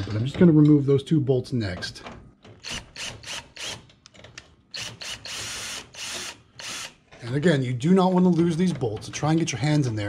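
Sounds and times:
cordless drill loosening a bolt: 2.6 - 3.9, 4.7 - 7.0.

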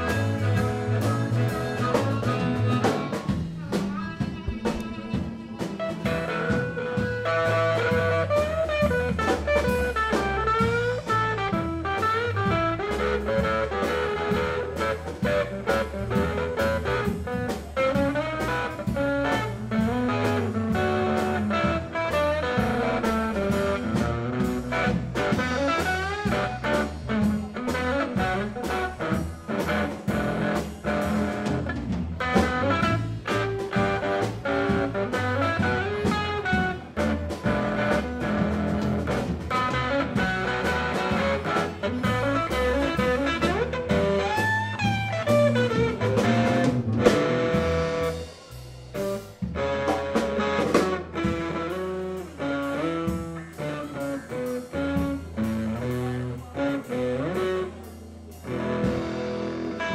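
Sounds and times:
bass guitar: 0.0 - 59.9
drums: 0.0 - 59.9
electric guitar bending notes: 0.0 - 59.9.

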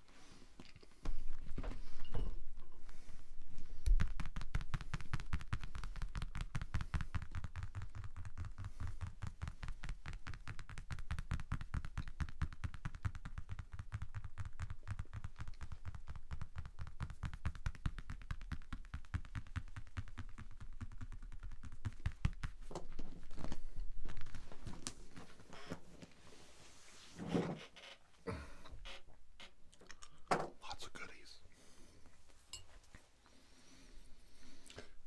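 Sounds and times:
rapid light tapping: 3.8 - 22.7.

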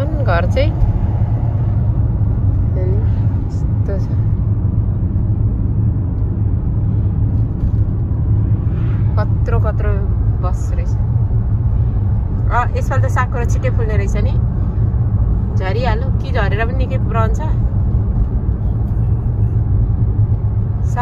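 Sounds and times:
road and engine rumble: 0.0 - 21.0.

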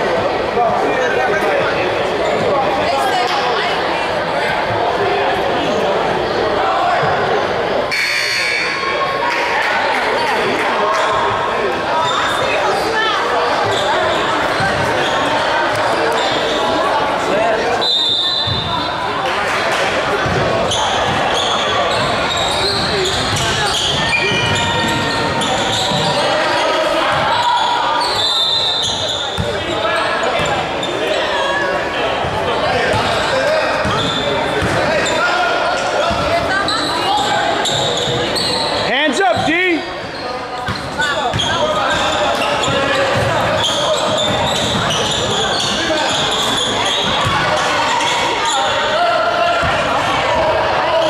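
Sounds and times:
crowd talking and shouting: 0.0 - 51.0
basketball bouncing on wooden court: 40.7 - 46.2.

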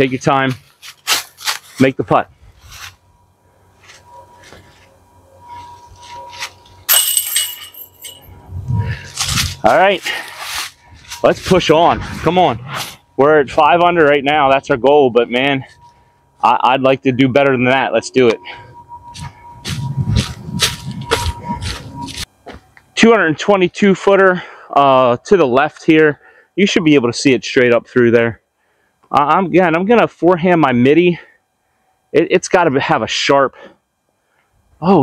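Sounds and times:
footsteps crunching dry leaves: 0.6 - 3.0, 9.0 - 11.6, 19.1 - 22.6
disc hitting metal chains: 6.3 - 8.3
chains jingling: 6.9 - 8.3.

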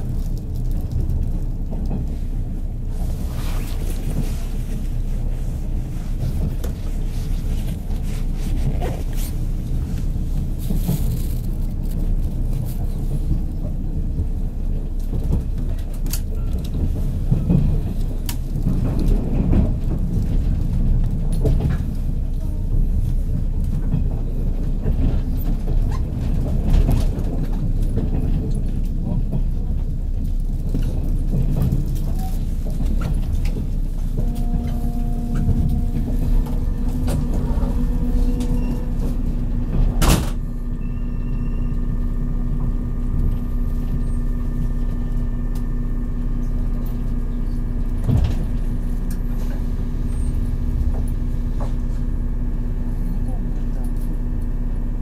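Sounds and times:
train wheels rumbling on rail: 0.0 - 55.0
rail-joint clicks: 15.0 - 22.6, 23.3 - 45.7
train whining tones: 33.5 - 53.4.

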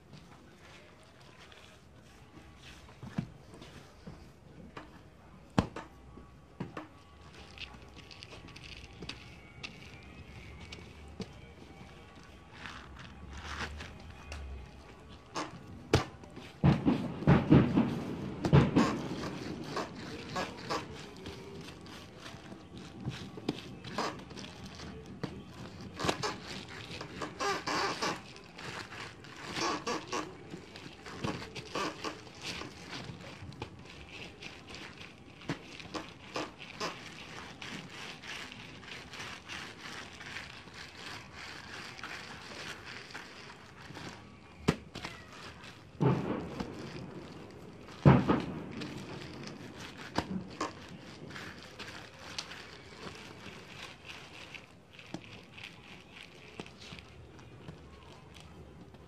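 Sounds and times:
plastic sheeting crinkling: 0.0 - 59.0.

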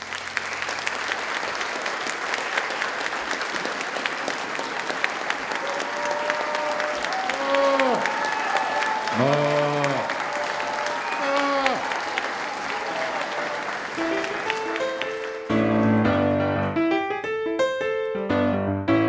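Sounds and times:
audience applauding: 0.0 - 16.4.

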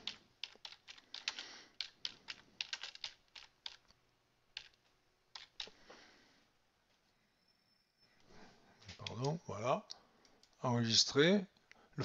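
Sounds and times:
quiet typing on keyboard: 0.0 - 5.9, 8.9 - 9.4.

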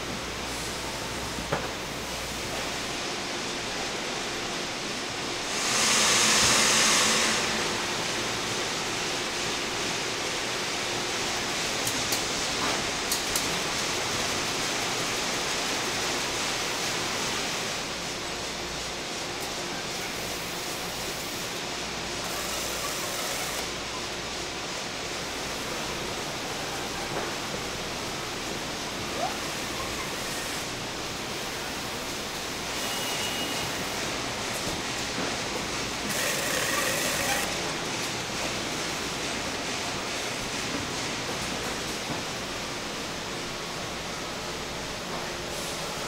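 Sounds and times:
packing machinery and conveyors running: 0.0 - 46.0
hissy machinery surges: 5.4 - 10.6.

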